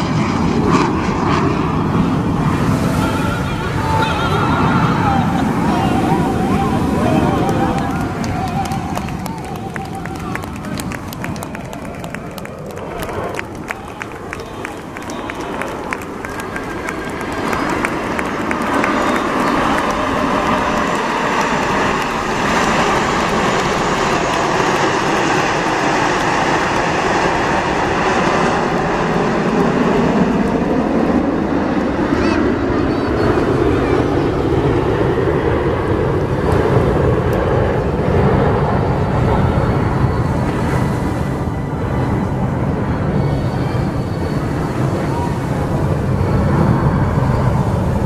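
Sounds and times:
jets flying past: 0.0 - 48.0.

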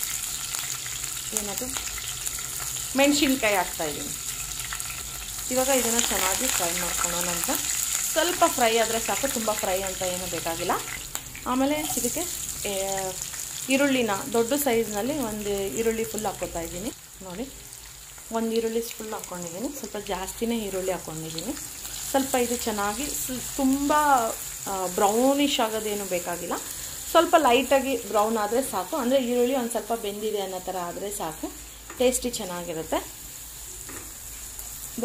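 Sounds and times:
vegetables sizzling in oil: 0.0 - 35.0.

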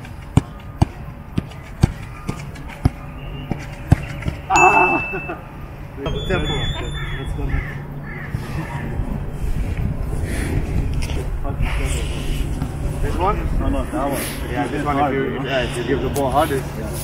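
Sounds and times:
voices: 0.0 - 17.0
harsh bird calls: 6.1 - 9.0.

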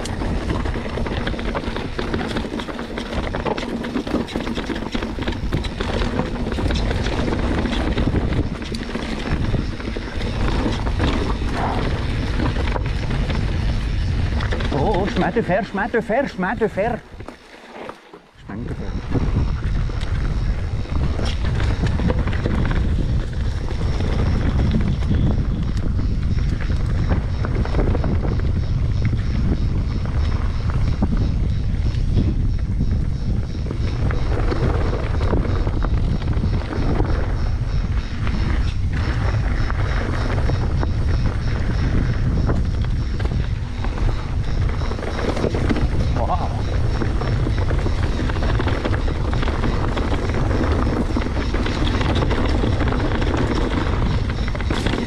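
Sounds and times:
bike rattles and clicks: 0.0 - 55.0
wind rumbling on microphone: 0.0 - 55.0.

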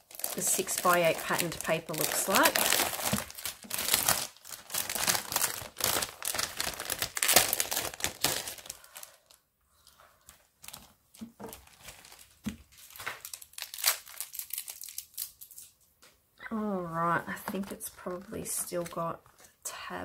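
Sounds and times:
plastic packaging crinkling: 0.0 - 9.4, 10.2 - 15.8
paper and plastic rustles: 0.0 - 15.8.

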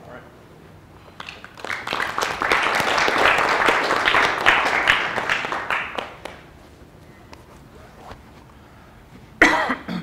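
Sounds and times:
person coughing: 9.4 - 10.0.

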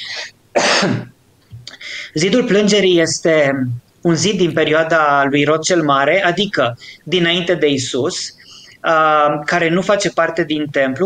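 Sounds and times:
man coughing: 0.0 - 1.1.

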